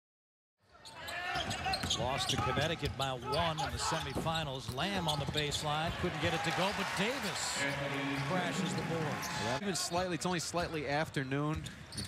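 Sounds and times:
arena crowd noise: 0.7s - 11.6s.

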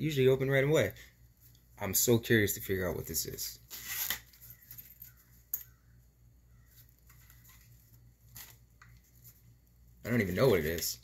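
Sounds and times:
faint scraping and rustling: 6.6s - 11.0s.

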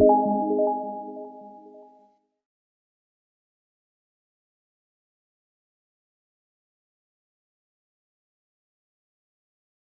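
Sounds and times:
ringing music tones: 0.0s - 1.7s.

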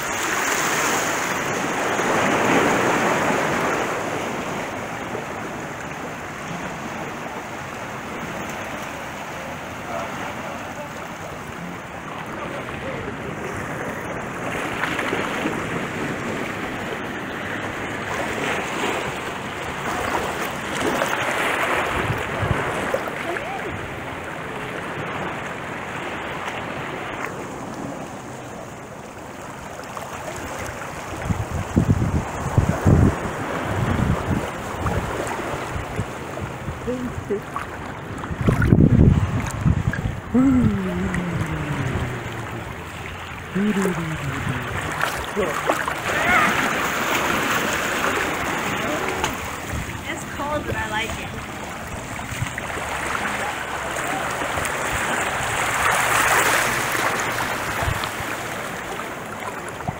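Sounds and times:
small waves lapping: 0.0s - 59.9s
wind buffeting microphone: 21.4s - 25.4s, 31.0s - 53.2s, 54.1s - 58.4s.

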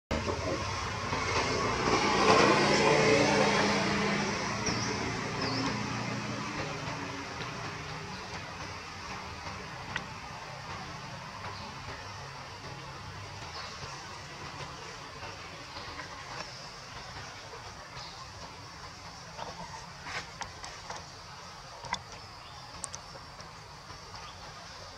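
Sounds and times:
motor vehicle passing: 0.2s - 20.4s.

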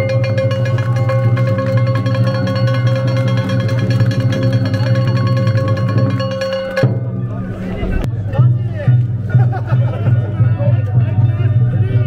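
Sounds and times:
low drone: 0.1s - 9.2s.

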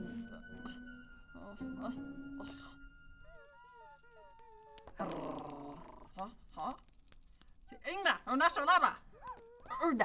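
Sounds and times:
cartoon dogs whimpering: 3.2s - 6.1s.

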